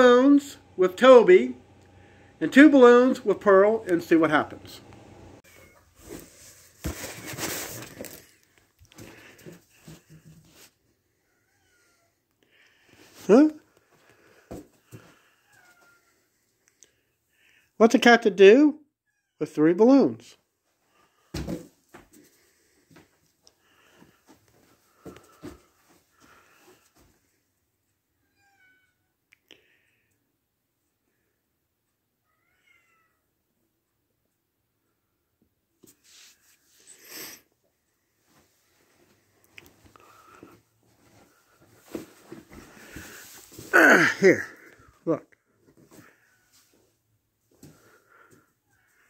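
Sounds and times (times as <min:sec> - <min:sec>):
balloons rustling: 0:05.9 - 0:08.4.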